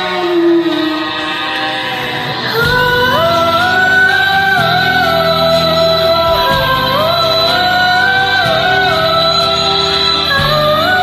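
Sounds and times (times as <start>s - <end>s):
karaoke backing track: 0.0s - 11.0s.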